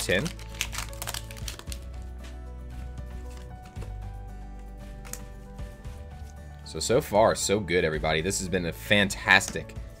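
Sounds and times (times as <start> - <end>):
background music with bass line: 0.0 - 10.0
trading cards clicking: 5.0 - 5.4.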